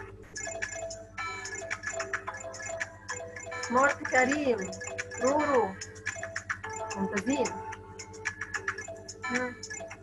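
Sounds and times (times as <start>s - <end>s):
light game background music: 0.0s - 10.0s.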